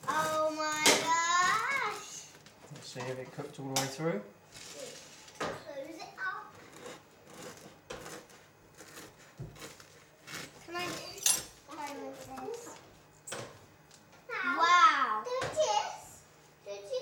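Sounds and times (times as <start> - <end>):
knife cutting crusty bread: 0.0 - 3.2, 6.5 - 12.7
quiet adult and child voices: 4.6 - 6.8.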